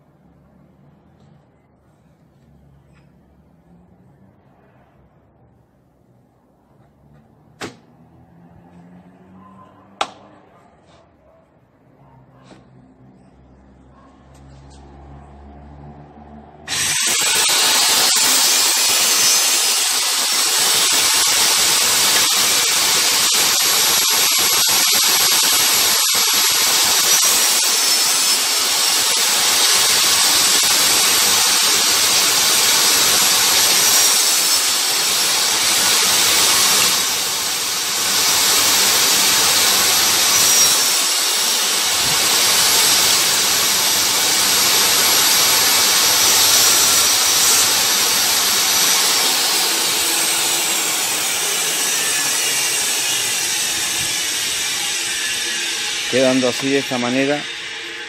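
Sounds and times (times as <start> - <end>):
saw blade cutting wood: 16.7 - 58.0
table saw whining: 16.7 - 58.0.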